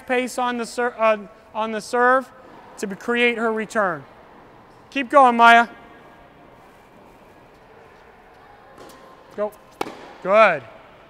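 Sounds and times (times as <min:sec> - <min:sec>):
tennis racket striking ball: 0:08.8 - 0:10.4.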